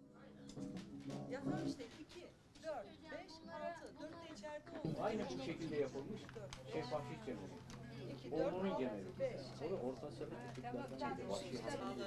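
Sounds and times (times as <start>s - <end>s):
faint low voices: 0.0s - 12.0s.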